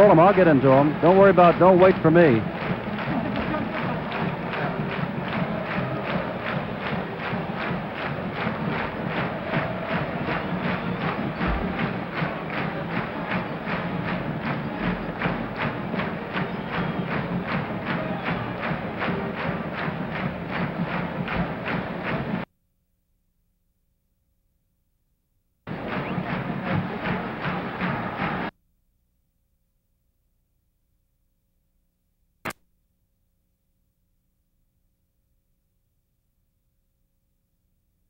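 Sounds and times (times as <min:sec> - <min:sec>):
band music with drum beat: 0:00.0 - 0:22.4, 0:25.7 - 0:28.5.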